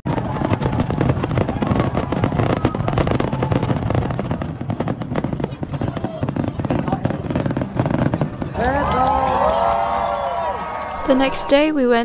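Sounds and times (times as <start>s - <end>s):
fireworks bangs and crackles: 0.0s - 10.3s
crowd voices: 0.1s - 12.0s.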